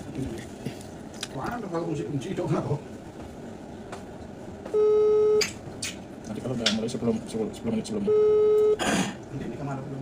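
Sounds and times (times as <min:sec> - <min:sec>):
phone ringing tone beep: 0:04.8 - 0:05.4, 0:08.1 - 0:08.8.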